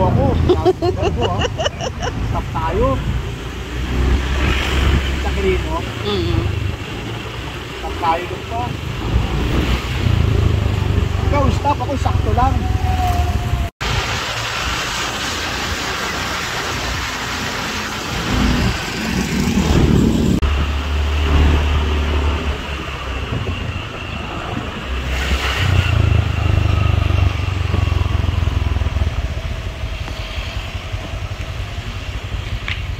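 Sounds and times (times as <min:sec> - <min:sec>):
road and wind noise: 0:00.0 - 0:32.9.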